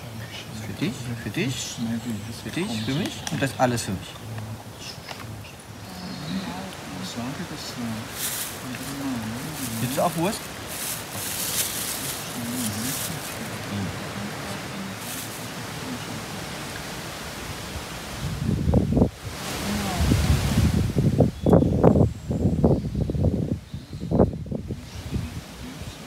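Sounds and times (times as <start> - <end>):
wind gusts buffeting microphone: 0.0 - 26.0
wind through forest leaves: 0.0 - 26.0.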